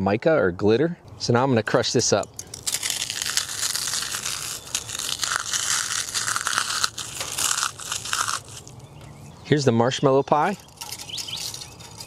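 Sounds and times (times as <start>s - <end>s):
dry char crunching and crackling: 1.6s - 9.6s, 10.3s - 12.0s.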